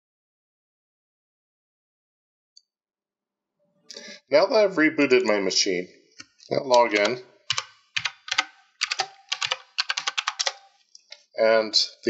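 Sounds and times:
keyboard typing: 0:06.2 - 0:11.2.

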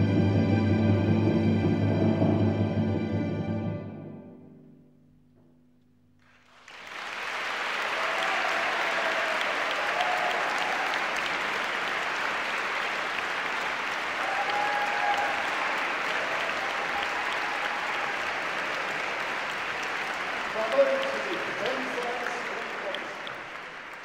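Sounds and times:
audience applauding: 0:06.2 - 0:24.0.

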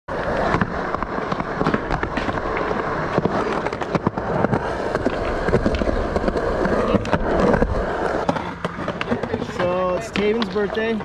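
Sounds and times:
skateboard wheels on concrete: 0:00.1 - 0:11.0.

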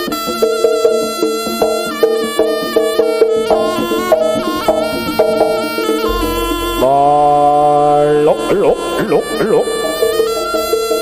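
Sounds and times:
reedy shawm playing: 0:00.0 - 0:11.0.

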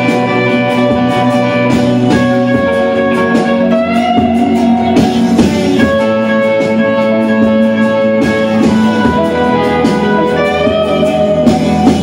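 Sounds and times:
electric guitar lead: 0:00.0 - 0:12.0
rock band backing: 0:00.0 - 0:12.0.

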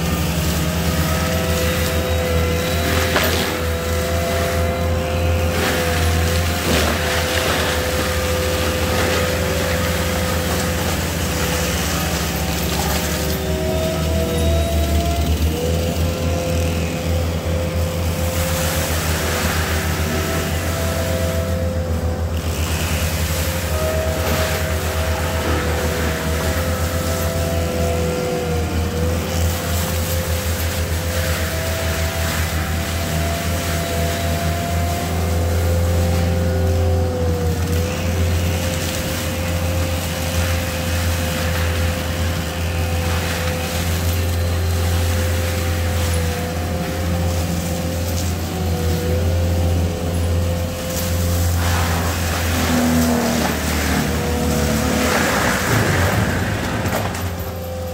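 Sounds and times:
engine drone: 0:00.0 - 0:57.9
mulcher drive whine: 0:00.0 - 0:57.9
mulcher grinding brush: 0:00.0 - 0:57.9.

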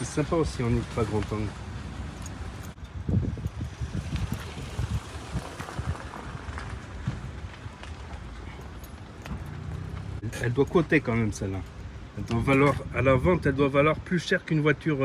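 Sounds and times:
footsteps on asphalt: 0:02.0 - 0:10.2.

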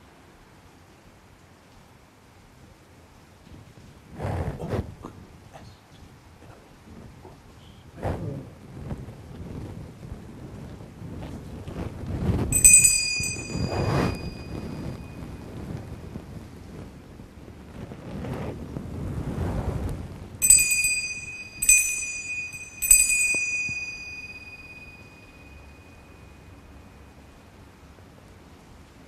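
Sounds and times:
low rustling noise: 0:00.0 - 0:29.0
altar bell ringing: 0:12.6 - 0:15.5, 0:20.4 - 0:27.1.

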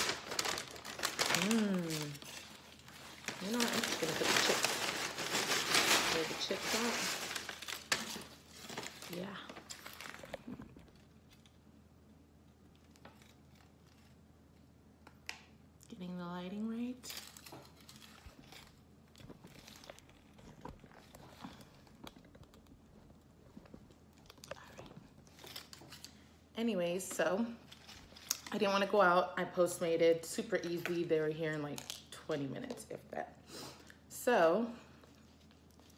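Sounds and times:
paper chip bag rustling: 0:00.0 - 0:11.5.

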